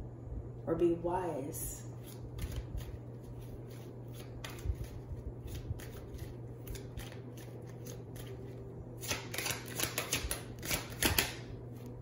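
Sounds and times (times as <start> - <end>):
cards being shuffled: 2.0 - 12.0.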